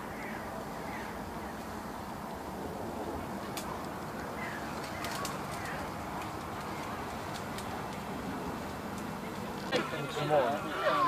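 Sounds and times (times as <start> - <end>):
faint bird calls: 0.0 - 2.0, 3.4 - 7.2
outdoor background noise: 0.0 - 11.0.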